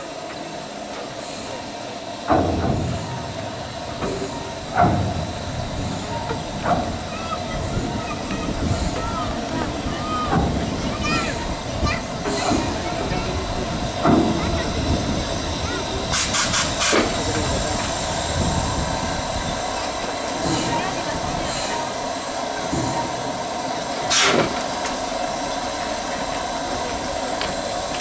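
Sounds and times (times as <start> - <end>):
steam hissing: 0.0 - 28.0.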